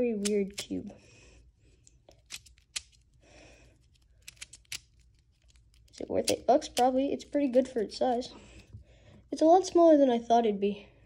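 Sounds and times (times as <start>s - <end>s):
soft handling noise: 1.6s - 10.0s
plastic puzzle cube clicks: 2.2s - 3.0s, 4.2s - 5.6s.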